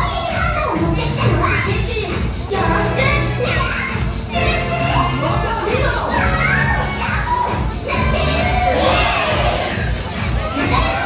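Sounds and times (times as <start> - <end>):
children shouting excitedly: 0.0 - 11.0
loud show music: 0.0 - 11.0
audience cheering: 6.2 - 11.0.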